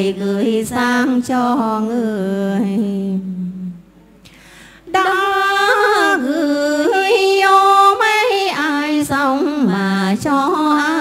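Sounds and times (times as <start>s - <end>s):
women singing unaccompanied: 0.0s - 3.8s, 4.8s - 11.0s
soft breathy hiss: 2.6s - 5.1s.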